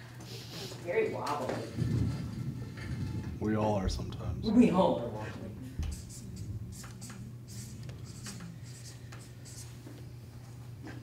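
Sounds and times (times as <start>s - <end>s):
steady low hum: 0.0s - 11.0s
marker writing on whiteboard: 5.8s - 10.2s.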